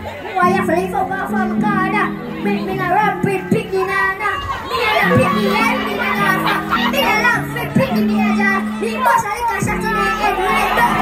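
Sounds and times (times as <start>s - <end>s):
boy talking through a microphone: 0.0s - 11.0s
crowd voices: 0.0s - 11.0s.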